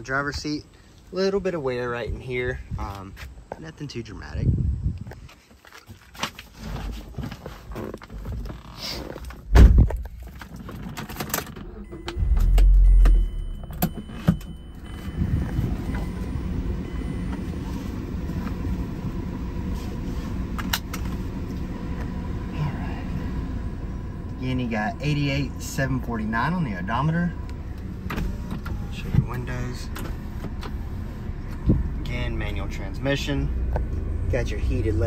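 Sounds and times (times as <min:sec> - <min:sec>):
car engine starting and idling: 0:07.8 - 0:35.0
heavy thump: 0:09.5 - 0:10.0, 0:12.0 - 0:14.7.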